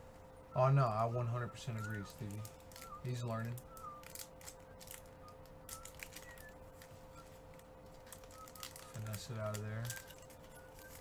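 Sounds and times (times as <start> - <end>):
faint steady hum: 0.0 - 11.0
foil wrapper crinkling: 1.8 - 11.0.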